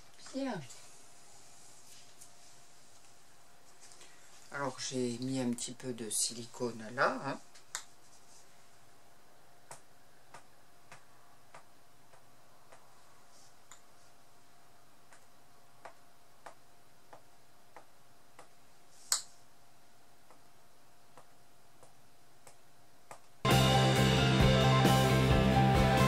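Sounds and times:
faint steady hum: 0:00.0 - 0:23.5.

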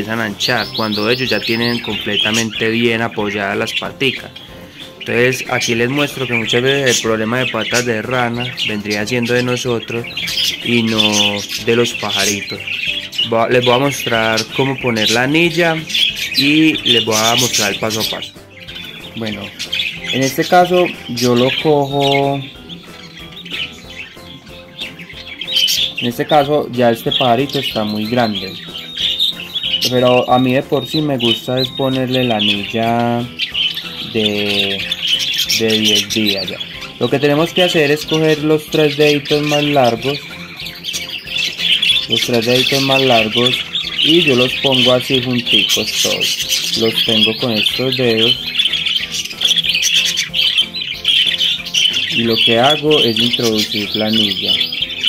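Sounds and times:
budgerigar chicks cheeping: 0:00.0 - 0:55.0
quiet background music: 0:00.0 - 0:55.0.

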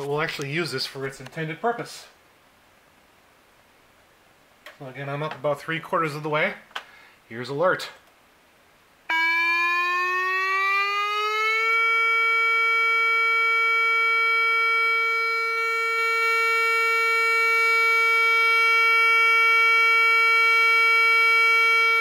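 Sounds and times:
electronic siren alert tone: 0:09.1 - 0:22.0.

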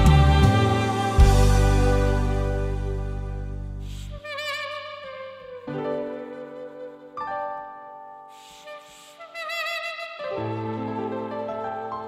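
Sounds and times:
sustained backing chord: 0:00.0 - 0:04.2
saxophone with vibrato: 0:00.0 - 0:07.4, 0:08.3 - 0:12.0.

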